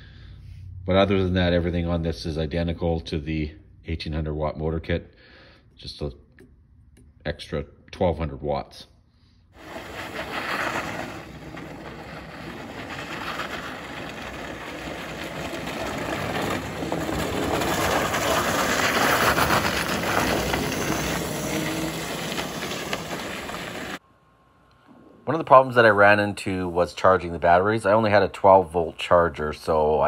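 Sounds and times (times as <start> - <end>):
tyres crunching on gravel: 9.6 - 24.0.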